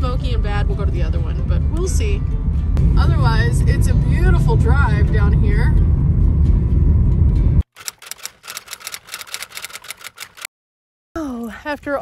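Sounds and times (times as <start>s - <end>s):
van road noise rumble: 0.0s - 7.7s
rapid dry clicks: 7.7s - 10.5s.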